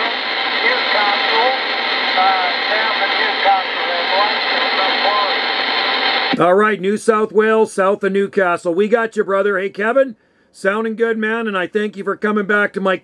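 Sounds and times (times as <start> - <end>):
faint voice over radio speaker: 0.0 - 6.4
radio static hiss: 0.0 - 7.9.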